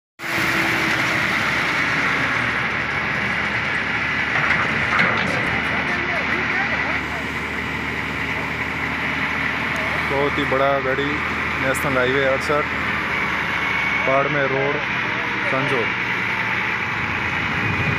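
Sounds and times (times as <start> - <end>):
diesel truck engine running: 0.2 - 17.9
road and traffic hum: 0.2 - 17.9.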